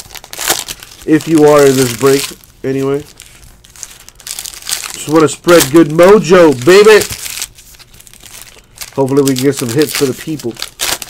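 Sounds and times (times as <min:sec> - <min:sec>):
foil wrappers crinkling: 0:00.0 - 0:11.0.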